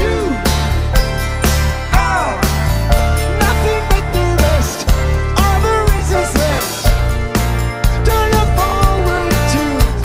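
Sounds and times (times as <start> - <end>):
man singing lead vocal: 0.0 - 0.8, 1.7 - 7.1, 7.8 - 10.0
live pop-rock band: 0.0 - 10.0.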